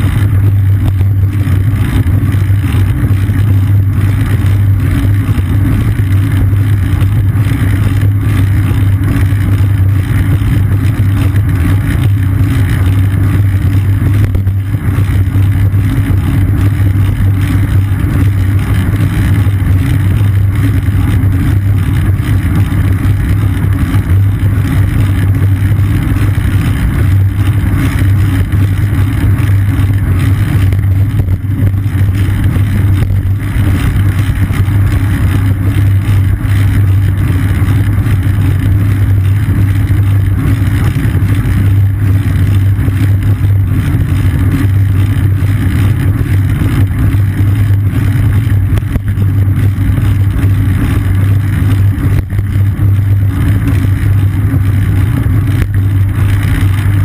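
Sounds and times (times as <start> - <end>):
wind and road rumble: 0.0 - 57.0.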